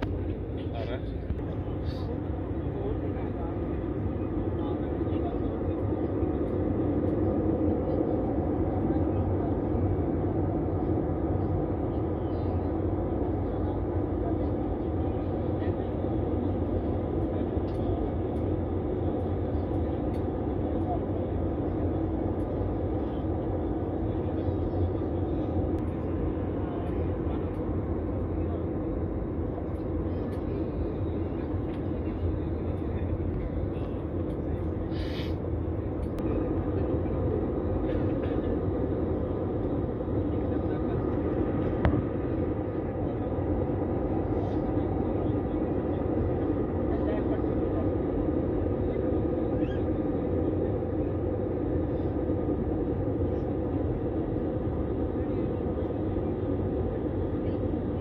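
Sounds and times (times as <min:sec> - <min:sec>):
jet engine drone: 0:00.0 - 0:58.0.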